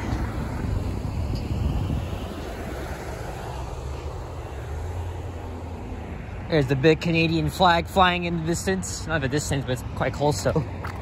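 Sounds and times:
rumble of passing cars: 0:00.0 - 0:11.0.

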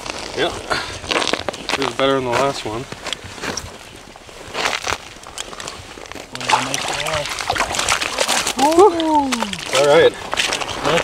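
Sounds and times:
crunching of wet slush and ice: 0:00.0 - 0:11.0
water splashing and sloshing: 0:02.8 - 0:11.0
man exclaiming: 0:08.6 - 0:09.9.

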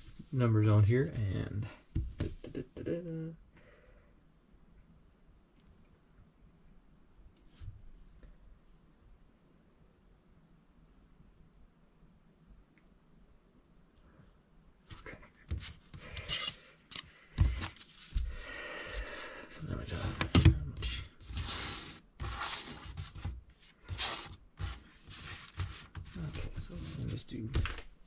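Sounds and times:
wooden tiles scraping on surface: 0:14.9 - 0:27.8.

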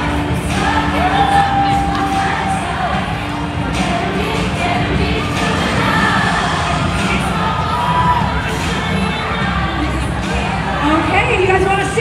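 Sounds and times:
crowd cheering and shouting: 0:00.0 - 0:12.0
music playing: 0:00.0 - 0:12.0.

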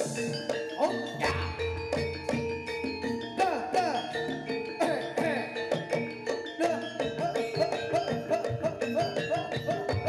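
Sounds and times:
drums playing fast beat: 0:00.0 - 0:10.0
gamelan metal keys: 0:00.0 - 0:10.0.

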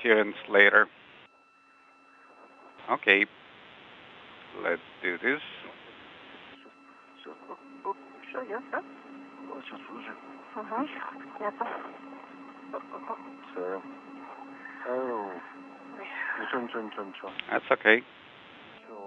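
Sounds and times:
steady hum: 0:00.0 - 0:19.0
speech over radio link: 0:02.8 - 0:03.3, 0:04.6 - 0:05.8, 0:07.2 - 0:12.0, 0:12.7 - 0:18.0, 0:18.8 - 0:19.0.

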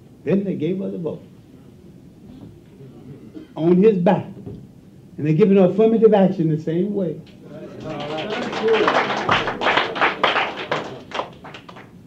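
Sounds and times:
audience clapping: 0:07.6 - 0:12.0.

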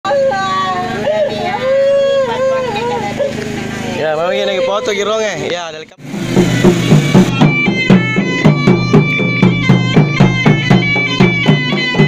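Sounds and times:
low motor hum: 0:00.1 - 0:04.8, 0:05.9 - 0:11.0
woman wailing in grief: 0:01.0 - 0:03.3.

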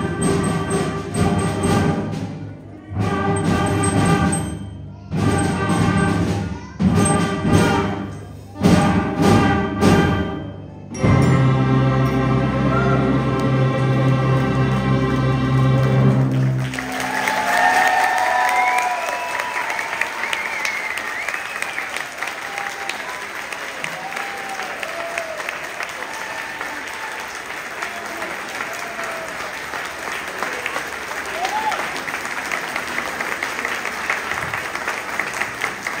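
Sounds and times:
audience applause: 0:13.8 - 0:36.0
audience cheering and whoops: 0:16.6 - 0:29.7, 0:30.4 - 0:32.1.

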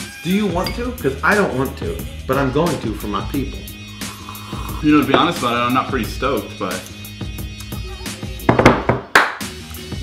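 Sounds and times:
background music with steady beat: 0:00.0 - 0:10.0
hand clapping: 0:08.7 - 0:09.6.

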